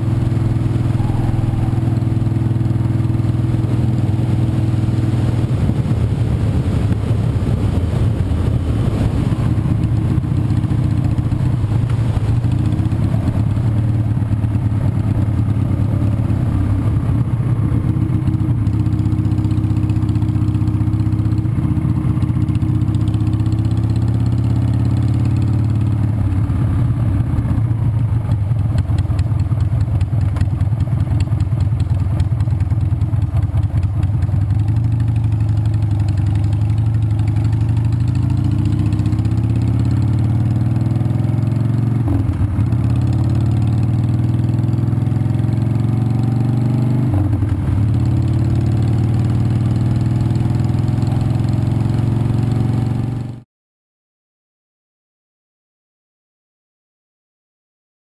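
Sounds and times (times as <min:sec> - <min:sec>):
motorcycle engine running: 0:00.0 - 0:53.4.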